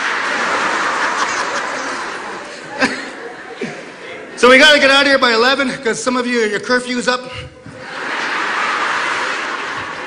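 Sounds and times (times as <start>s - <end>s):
audience laughing: 0.0s - 4.4s, 7.6s - 10.0s.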